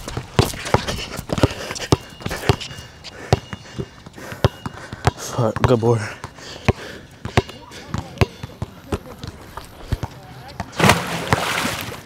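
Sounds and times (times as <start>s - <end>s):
basketball bouncing on hard court: 0.0s - 2.7s, 3.3s - 9.4s.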